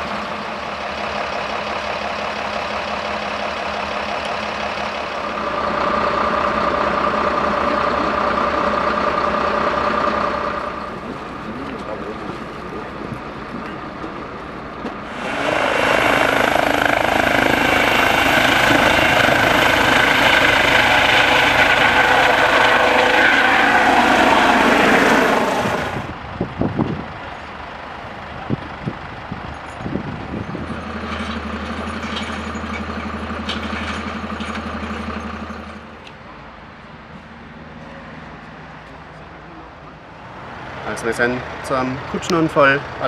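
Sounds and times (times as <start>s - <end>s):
helicopter turbine and rotor noise: 0.0s - 36.5s
low engine hum: 0.0s - 40.8s.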